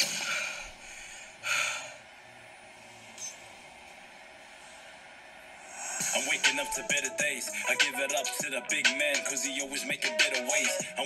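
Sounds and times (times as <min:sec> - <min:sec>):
person breathing heavily: 0:00.0 - 0:02.2, 0:05.6 - 0:06.5.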